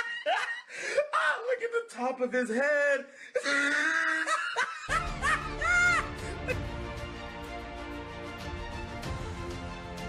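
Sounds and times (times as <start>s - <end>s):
person laughing: 0.0s - 0.7s, 3.4s - 6.7s.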